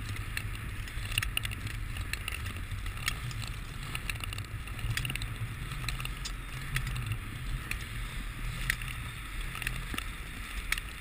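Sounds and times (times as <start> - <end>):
sharp clicks of skate strokes: 0.0 - 11.0
skate blades scraping ice: 0.0 - 11.0
steady low rumble: 0.0 - 11.0.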